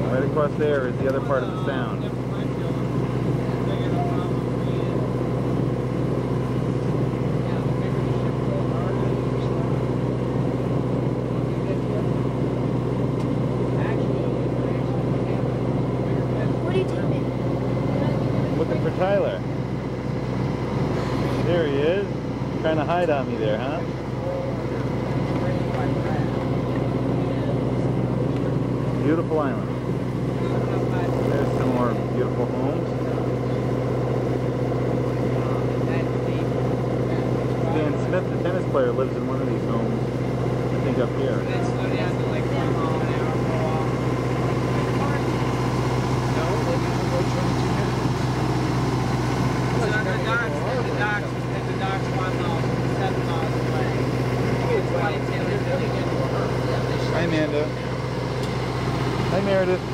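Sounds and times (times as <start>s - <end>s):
motorboat engine humming: 0.0s - 59.9s.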